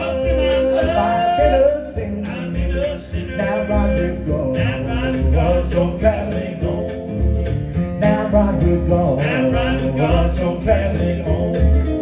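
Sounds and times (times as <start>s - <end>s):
man singing: 0.0s - 12.0s
mandolin: 0.0s - 12.0s
plucked upright bass: 0.0s - 12.0s
strummed acoustic guitar: 0.0s - 12.0s.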